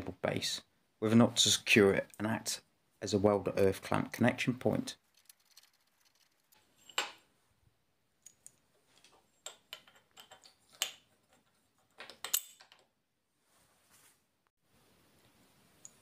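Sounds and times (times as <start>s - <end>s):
small metal parts clicking: 5.0s - 7.1s.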